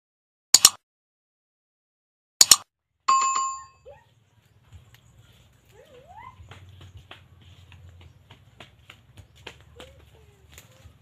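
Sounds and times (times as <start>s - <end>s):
notification chime: 3.1s - 3.9s.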